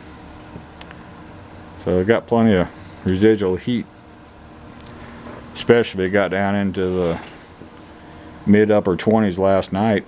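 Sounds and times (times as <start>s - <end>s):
electric heater fan humming: 0.0s - 10.0s.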